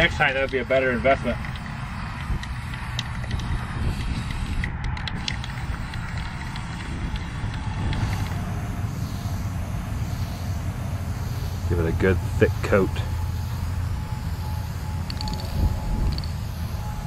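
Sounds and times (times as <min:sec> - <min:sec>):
aerosol spray can hissing: 0:00.0 - 0:17.0
wind buffeting microphone: 0:00.0 - 0:17.0.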